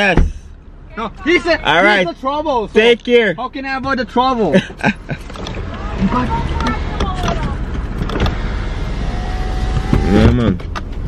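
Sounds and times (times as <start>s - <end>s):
engine and road rumble: 0.0s - 11.0s.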